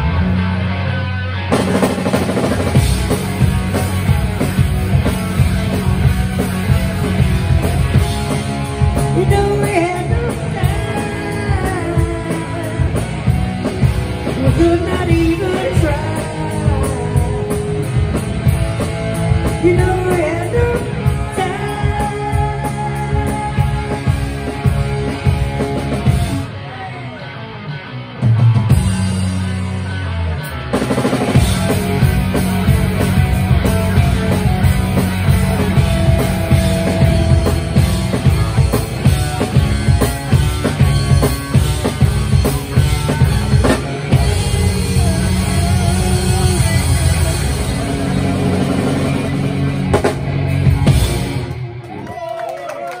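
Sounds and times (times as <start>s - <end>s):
bass guitar: 0.0s - 53.0s
drums: 0.0s - 53.0s
electric guitar: 0.0s - 53.0s
rock band playing: 0.0s - 53.0s.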